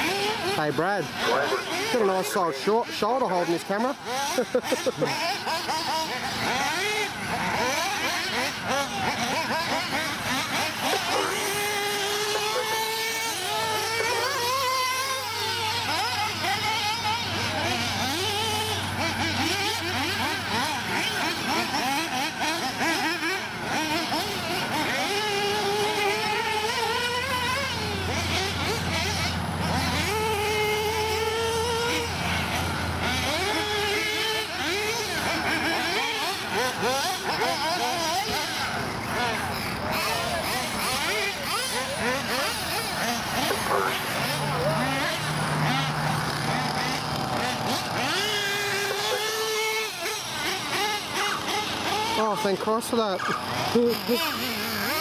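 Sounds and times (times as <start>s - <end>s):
rc car engines racing: 0.0s - 55.0s.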